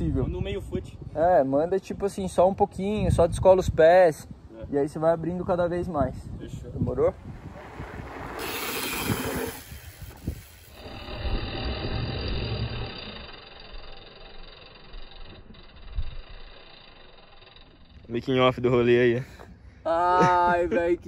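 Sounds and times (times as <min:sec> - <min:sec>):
wind rumbling on microphone: 0:00.0 - 0:16.5
bike tyres rolling on dirt: 0:06.8 - 0:18.2.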